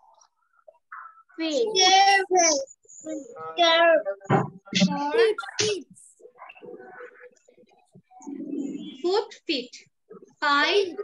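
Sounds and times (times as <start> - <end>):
child reading aloud: 1.4 - 4.1.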